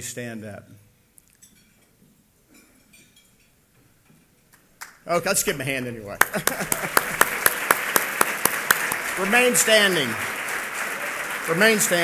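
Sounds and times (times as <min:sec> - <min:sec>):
audience stirring: 0:05.2 - 0:12.0.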